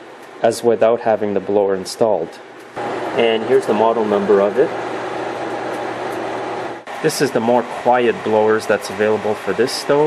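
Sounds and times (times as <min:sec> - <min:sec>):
fan blowing air: 0:00.0 - 0:10.0
fan motor low hum: 0:00.0 - 0:10.0.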